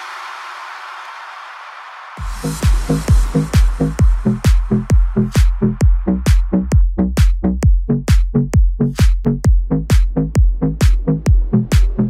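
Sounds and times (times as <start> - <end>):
hiss-like noise wash: 0.0 - 4.7.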